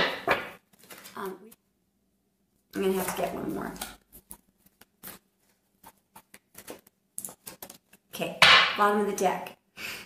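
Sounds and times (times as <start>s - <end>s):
cards being shuffled: 0.3s - 1.2s, 3.7s - 8.1s.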